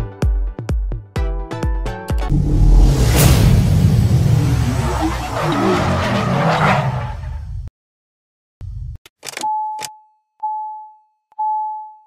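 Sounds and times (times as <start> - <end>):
tyres skidding: 4.1 - 7.6.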